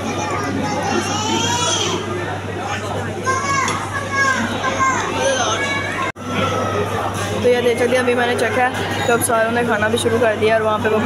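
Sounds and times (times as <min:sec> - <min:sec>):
children talking and calling out: 0:00.0 - 0:07.1.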